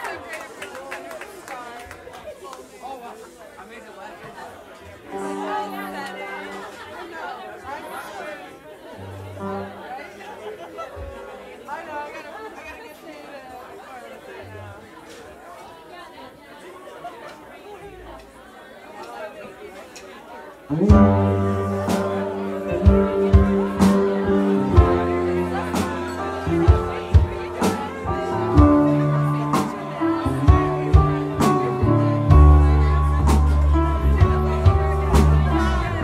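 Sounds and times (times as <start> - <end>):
audience chatter: 0.0 - 36.0
band playing loudly: 5.1 - 6.9, 20.7 - 36.0
low bass notes: 20.7 - 36.0.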